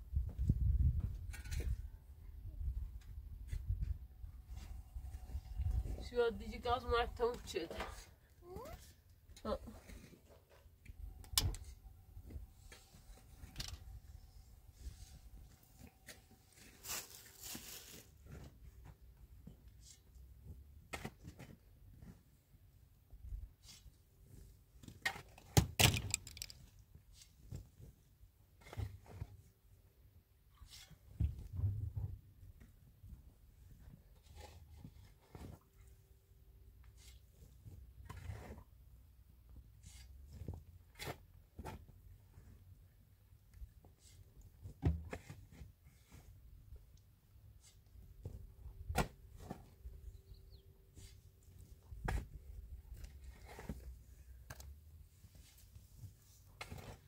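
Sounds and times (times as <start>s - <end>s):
shovel scraping dry soil: 12.6s - 18.5s, 23.6s - 24.0s, 38.0s - 38.6s, 39.8s - 41.8s, 47.6s - 48.0s, 50.9s - 52.4s, 53.0s - 53.9s, 55.3s - 57.0s.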